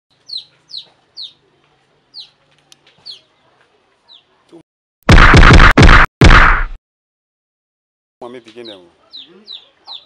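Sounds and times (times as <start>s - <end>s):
chicken calling: 8.6s - 10.0s.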